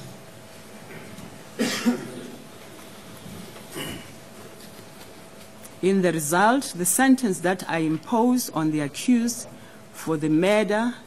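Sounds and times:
person coughing: 1.6s - 2.4s, 3.7s - 4.2s.

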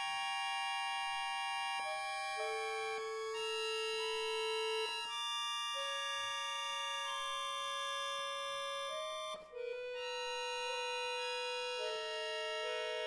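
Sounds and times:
accordion playing held chords: 1.6s - 7.5s, 8.7s - 13.0s.

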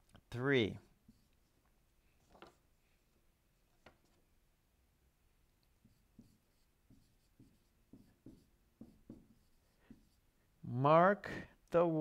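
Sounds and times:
marker writing on whiteboard: 0.9s - 1.5s, 5.7s - 10.3s.

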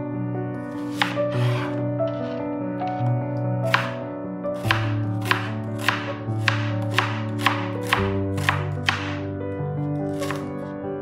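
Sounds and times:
background music: 0.0s - 11.0s
knife chopping on cutting board: 0.7s - 2.3s, 3.7s - 4.0s, 4.6s - 9.3s, 10.1s - 10.5s.

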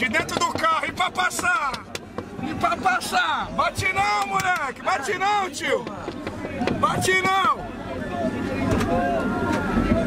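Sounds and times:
overlapping voices of people: 0.0s - 10.0s.

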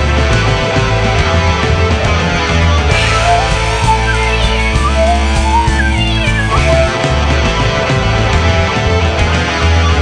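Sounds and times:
rock band playing: 0.0s - 10.0s
sliding lead guitar line: 0.0s - 10.0s.

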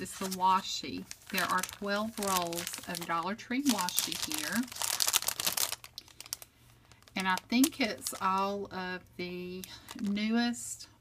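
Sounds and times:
plastic packaging crinkling: 0.0s - 8.6s, 9.6s - 10.2s.

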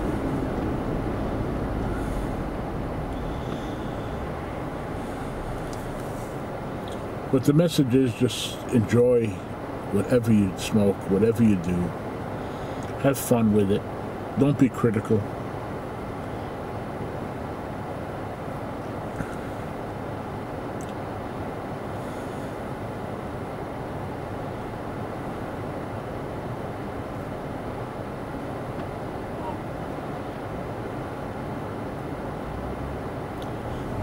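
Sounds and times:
car engine idling: 0.0s - 13.7s.

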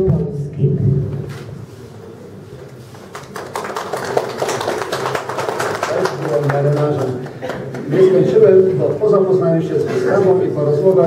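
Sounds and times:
audience applauding: 3.0s - 8.0s.

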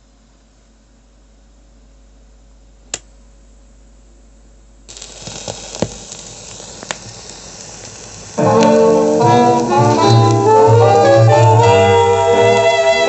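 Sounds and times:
record surface hiss: 0.0s - 13.0s
record crackles and pops: 4.8s - 13.0s.

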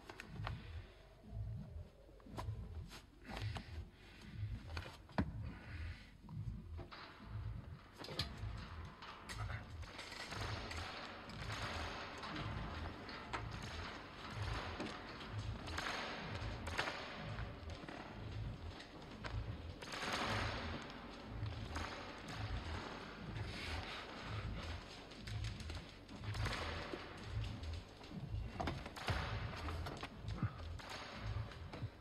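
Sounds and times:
low pulse: 0.0s - 32.0s.

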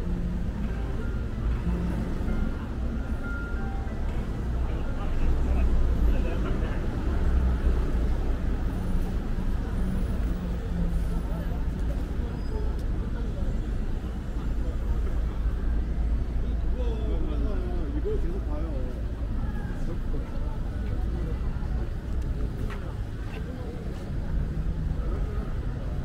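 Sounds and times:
music: 0.0s - 5.3s
low traffic rumble: 0.0s - 26.0s
passers-by talking: 0.0s - 26.0s.

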